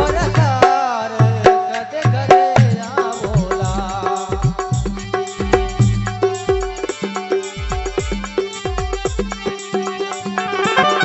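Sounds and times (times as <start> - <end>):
deep drum strikes dropping in pitch: 0.0 - 7.0
quick even drum rhythm: 0.0 - 11.0
held melodic notes: 5.1 - 11.0.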